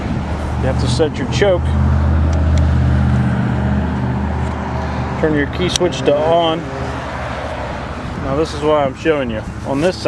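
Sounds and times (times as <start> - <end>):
low engine hum: 0.0 - 9.8.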